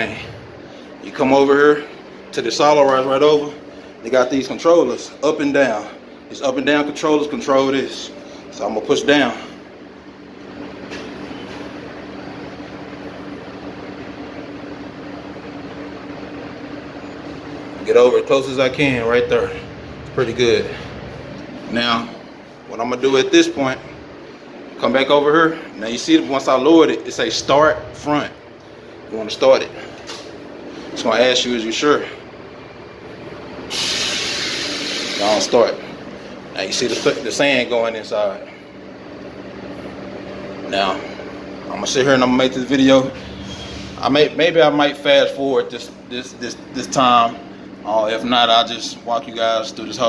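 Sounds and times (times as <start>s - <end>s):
mechanical hum of loading tube: 0.0s - 50.0s.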